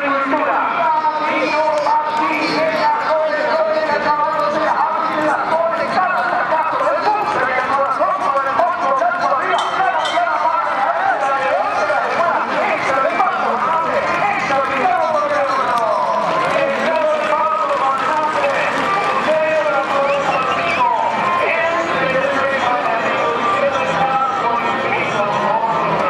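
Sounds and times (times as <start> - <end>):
man announcing fast: 0.0 - 26.0.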